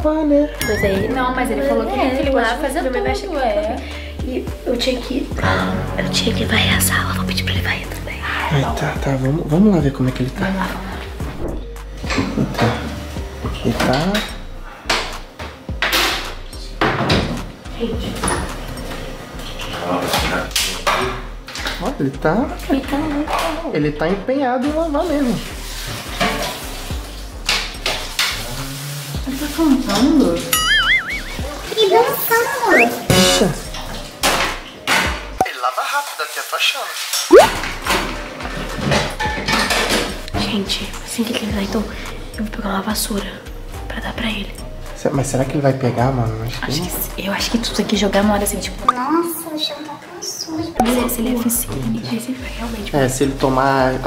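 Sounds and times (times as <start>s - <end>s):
plates and cutlery clinking: 26.0s - 26.6s, 37.7s - 40.2s.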